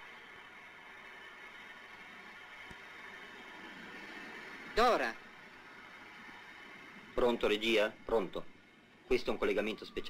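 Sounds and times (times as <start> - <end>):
faint hiss: 0.0 - 10.0.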